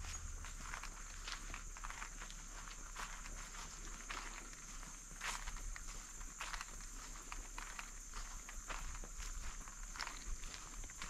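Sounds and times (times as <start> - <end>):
footsteps through undergrowth: 0.0 - 11.0.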